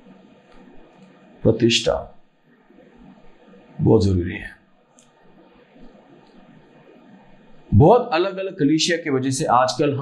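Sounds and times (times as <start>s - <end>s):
man speaking: 1.5s - 2.2s, 3.8s - 4.6s, 7.7s - 10.0s.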